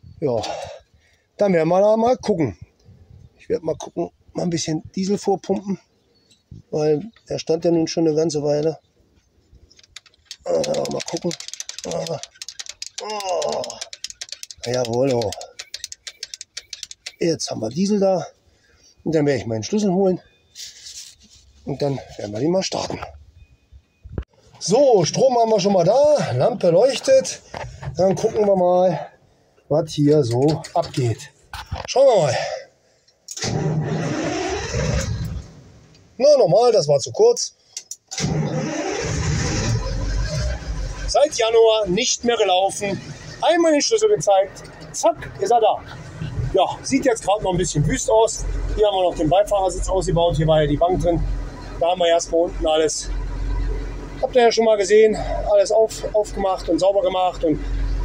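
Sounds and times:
diesel engine cranking and starting: 9.6 - 17.8, 33.3 - 35.8, 37.8 - 58.0
hand primer pump clicking: 9.8 - 17.2.

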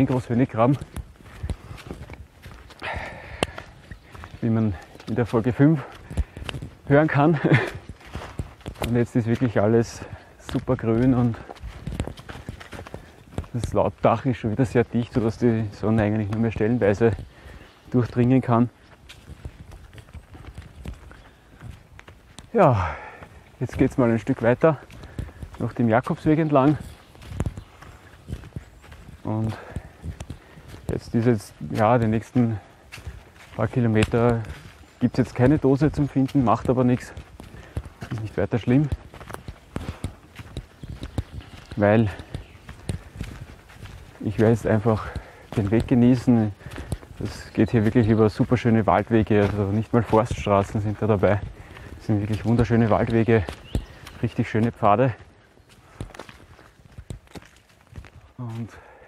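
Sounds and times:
footsteps on muddy path: 0.0 - 59.0.

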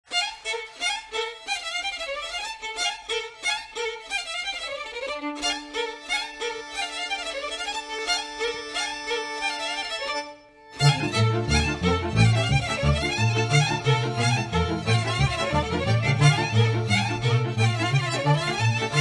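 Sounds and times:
violins leading melody: 0.2 - 19.0
long held notes: 10.1 - 19.0
folk band playing dance tune: 10.8 - 19.0.

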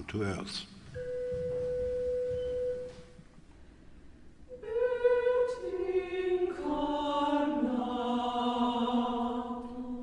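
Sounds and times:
pure steady pitch tone: 0.9 - 3.2.

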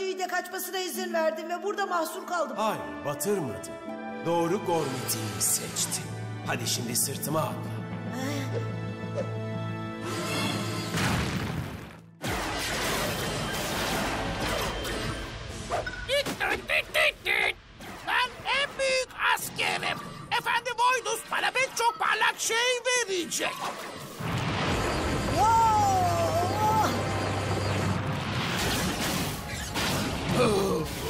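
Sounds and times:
crashing battle effects: 10.9 - 15.3, 26.9 - 31.0.

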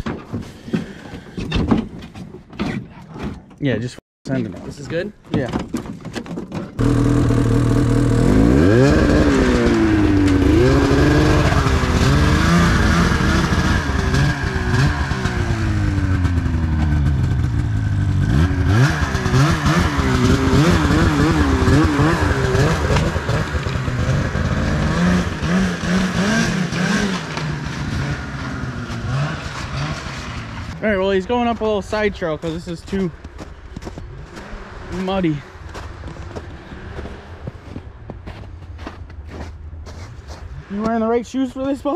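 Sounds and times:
snowmobile engine revving: 6.8 - 33.1.

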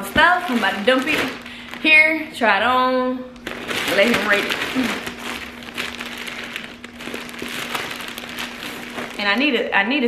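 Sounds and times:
plastic bags crinkling and rustling: 0.0 - 9.9.

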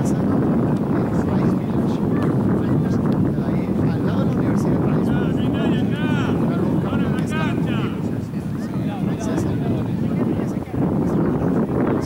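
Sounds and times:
faint voices calling: 0.0 - 12.0
wind rumble on microphone: 0.0 - 12.0.

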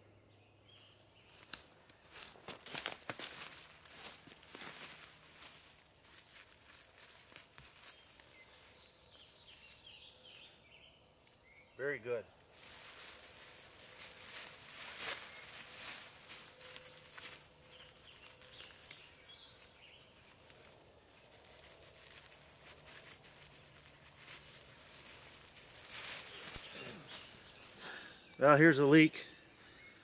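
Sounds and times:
leafy plants rustling: 1.1 - 10.4, 12.4 - 29.0
plastic bag crinkling: 12.5 - 19.3, 20.1 - 27.4.

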